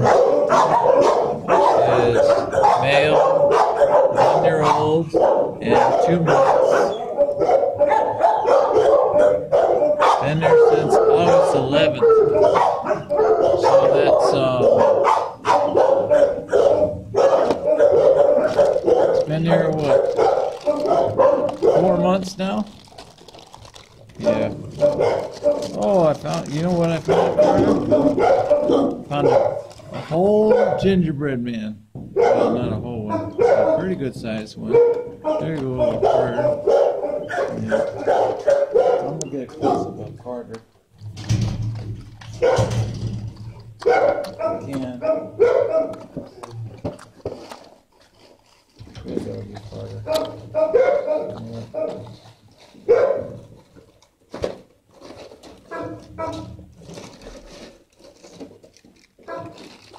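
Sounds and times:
many dogs barking: 0.0s - 23.5s, 24.2s - 31.0s, 32.2s - 40.1s, 42.3s - 43.1s, 43.8s - 46.2s, 49.7s - 53.6s, 55.7s - 56.7s, 59.2s - 59.7s.

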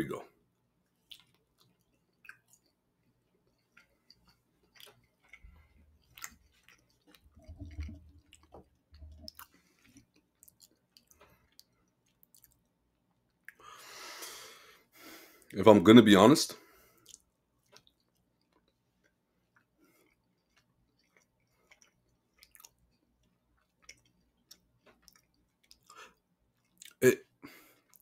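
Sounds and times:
chewing food: 0.7s - 13.8s, 16.7s - 28.0s
wet mouth clicks: 1.0s - 2.8s, 3.6s - 12.6s.

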